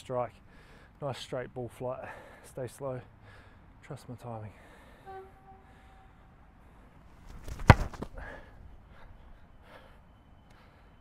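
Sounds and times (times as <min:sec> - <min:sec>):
boot kicking ball thud: 0:07.3 - 0:08.2.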